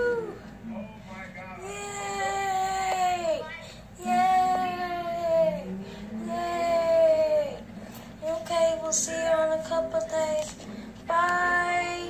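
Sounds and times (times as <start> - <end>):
child singing: 8.2 - 12.0.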